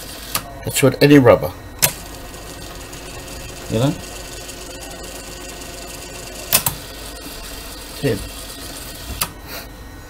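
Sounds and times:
cassette deck motor whir: 0.0 - 10.0
sharp mechanical clicks: 1.8 - 4.7, 5.6 - 9.4.

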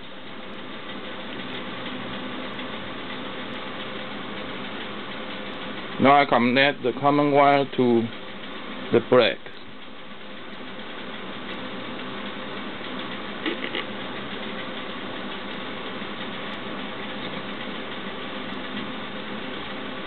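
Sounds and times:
background hum with hiss: 0.0 - 20.0.

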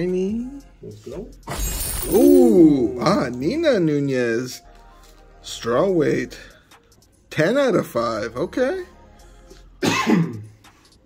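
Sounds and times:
faint background music: 0.0 - 11.0
man clearing his throat: 9.8 - 10.6.

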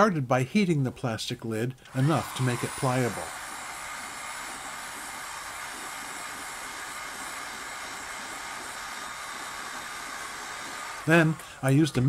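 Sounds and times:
heat gun fan blowing: 1.8 - 12.0.

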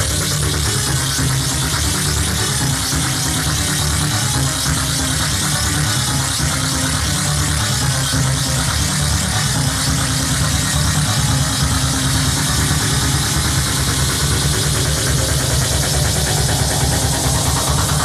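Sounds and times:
techno music: 0.0 - 18.0.

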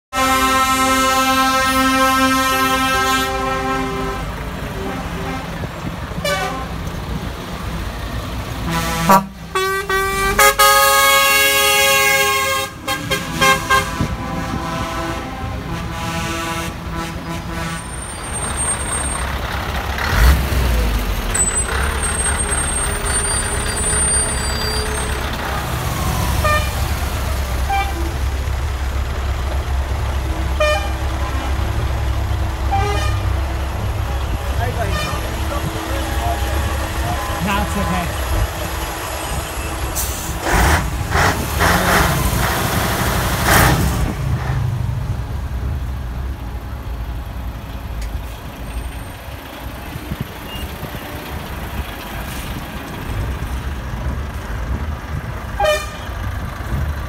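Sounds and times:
lorry air horn blasts: 0.1 - 5.5, 8.6 - 17.9, 32.7 - 33.3, 55.6 - 56.1
diesel truck engine passing: 0.2 - 57.0.

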